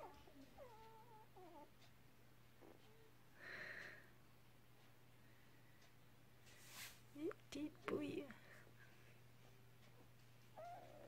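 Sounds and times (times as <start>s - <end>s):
puppies whimpering: 0.0s - 1.7s.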